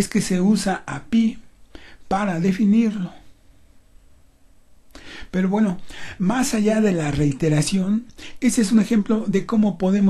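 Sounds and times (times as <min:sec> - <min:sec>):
person speaking: 0:00.0 - 0:03.3, 0:05.0 - 0:10.0.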